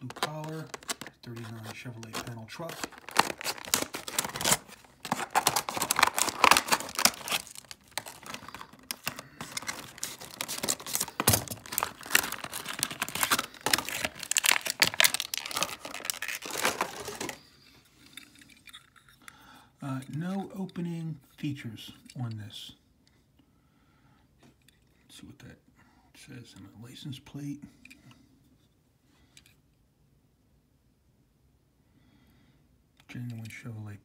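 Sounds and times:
plastic blister pack crackling: 0.0s - 17.5s.

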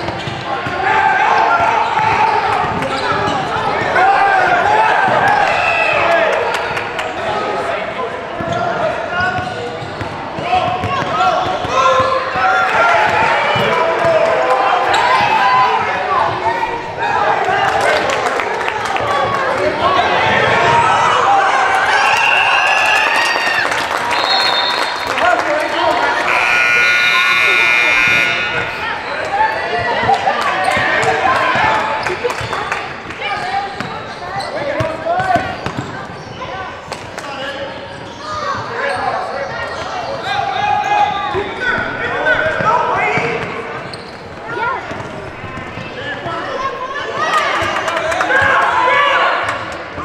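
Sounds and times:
players and spectators shouting: 0.0s - 50.0s
scoreboard buzzer: 26.0s - 29.0s.

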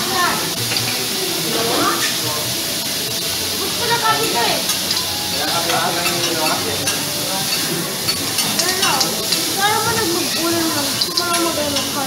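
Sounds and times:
beef sizzling on a griddle: 0.0s - 12.0s
metal spatulas scraping and tapping: 4.2s - 12.0s.

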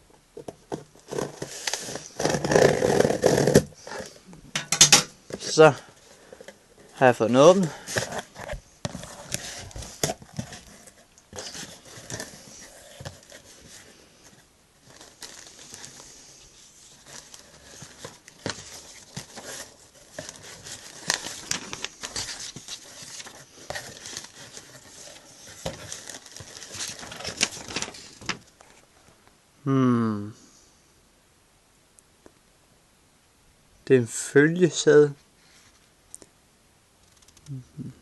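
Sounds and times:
paper and plastic rustling: 0.4s - 4.2s, 5.3s - 29.1s.

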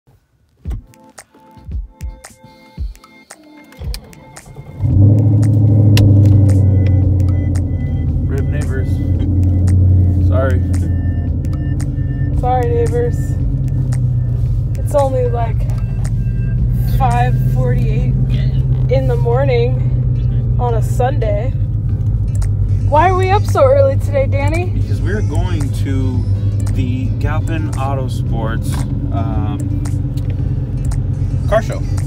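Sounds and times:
car engine starting and rumbling: 3.3s - 32.0s.

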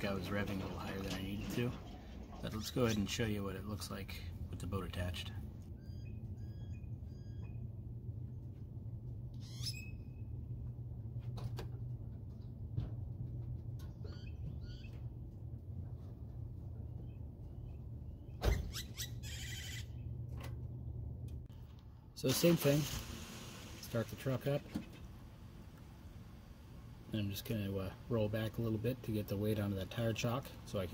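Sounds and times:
birds chirping: 0.0s - 8.0s, 16.6s - 20.2s
steady low hum: 0.0s - 30.9s.

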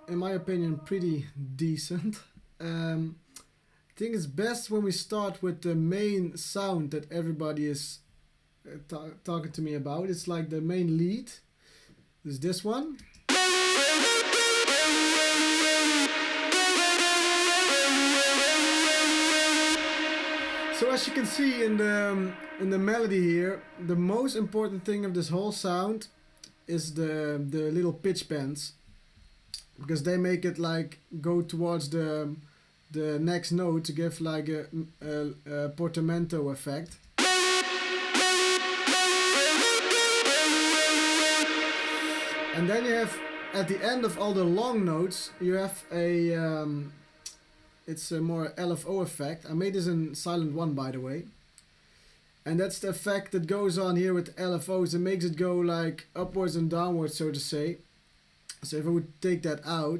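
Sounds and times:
distorted synth lead with pitch bends: 13.3s - 24.1s, 37.2s - 46.3s.

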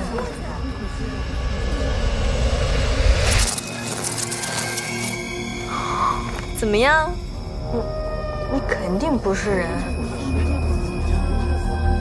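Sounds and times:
low rumbling swell: 0.0s - 4.1s.

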